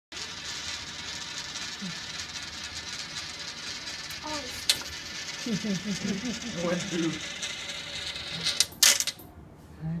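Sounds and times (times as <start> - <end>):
coin rolling in funnel: 0.2 - 9.2
coin clattering: 0.2 - 9.3.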